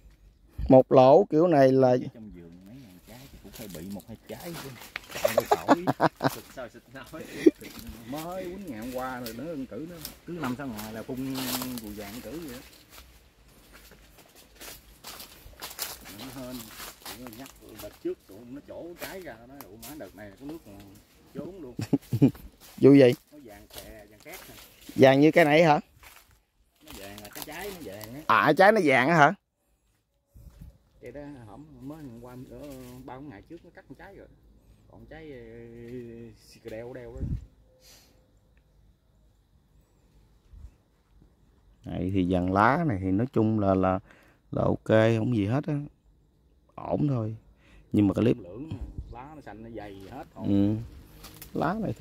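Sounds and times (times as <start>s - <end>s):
man speaking: 0.6s - 12.7s, 16.0s - 25.9s, 26.8s - 29.4s, 31.0s - 34.3s, 34.9s - 37.4s, 41.8s - 45.9s, 46.8s - 47.4s, 48.0s - 50.9s, 51.5s - 52.0s
footsteps on dry leaves: 2.8s - 28.3s, 31.8s - 33.2s, 50.0s - 52.0s.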